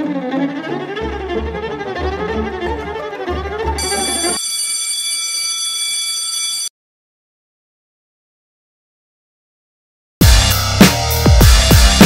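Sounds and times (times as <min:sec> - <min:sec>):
high-pitched electronic buzzer tone: 0:03.8 - 0:06.4.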